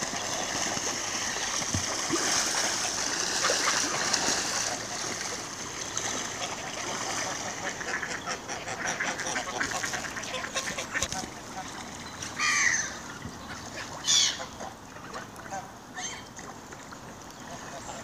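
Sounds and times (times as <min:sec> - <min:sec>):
splashing water: 0:00.0 - 0:08.3
ducks quacking: 0:06.3 - 0:11.8
geese: 0:06.4 - 0:11.8, 0:12.4 - 0:16.2.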